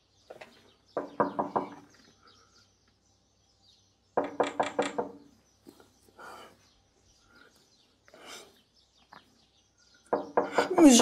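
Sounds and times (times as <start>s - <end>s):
knocking on a door: 1.0s - 1.9s, 4.2s - 5.3s, 10.1s - 11.0s.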